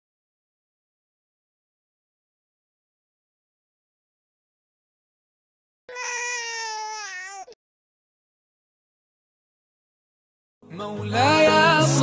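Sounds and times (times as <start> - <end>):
baby crying: 5.9 - 7.6.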